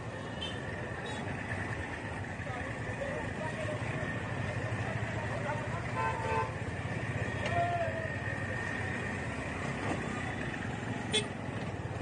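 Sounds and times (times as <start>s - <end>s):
street traffic: 0.0s - 12.0s
vehicle horn toot: 6.0s - 6.6s.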